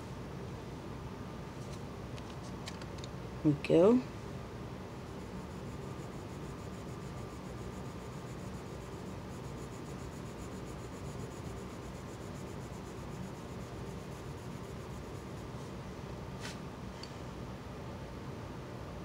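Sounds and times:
steady low hiss: 0.0 - 19.0.

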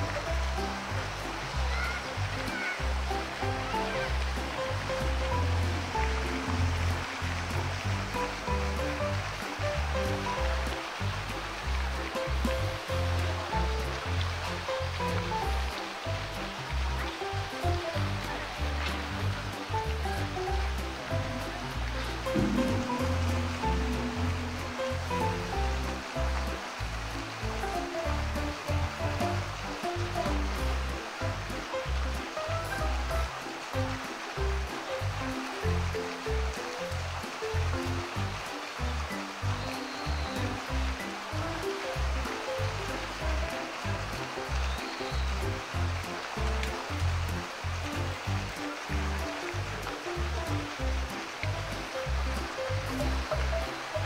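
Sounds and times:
flowing water rushing: 0.0 - 54.0
rhythmic background music: 0.0 - 54.0.

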